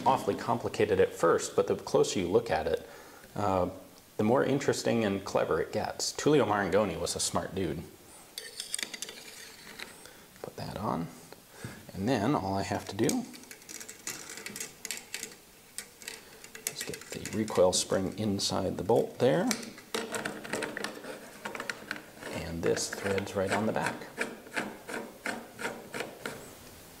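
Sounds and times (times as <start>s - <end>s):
metallic clicks and clinks: 13.0s - 18.3s.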